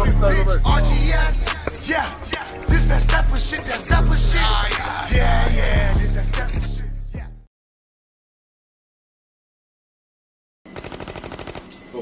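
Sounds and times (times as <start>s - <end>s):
automatic gunfire: 10.7s - 11.8s.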